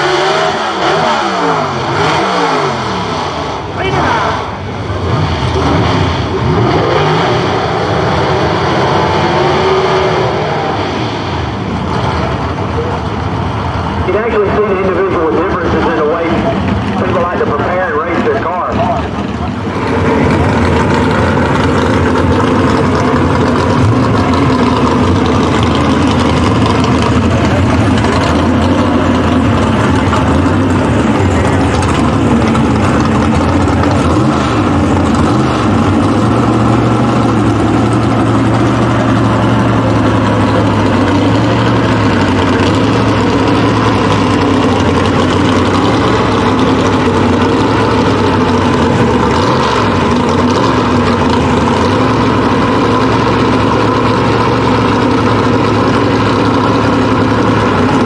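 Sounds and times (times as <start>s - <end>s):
race engine idling loudly: 0.0s - 58.0s.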